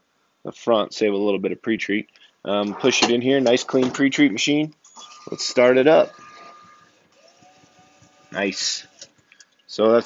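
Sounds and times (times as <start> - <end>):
thin motor whine: 5.2 - 9.0.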